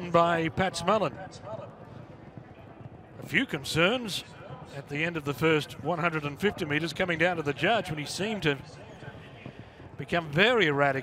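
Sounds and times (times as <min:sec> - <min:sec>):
man's commentary voice: 0:00.0 - 0:01.6, 0:03.2 - 0:09.2, 0:10.0 - 0:11.0.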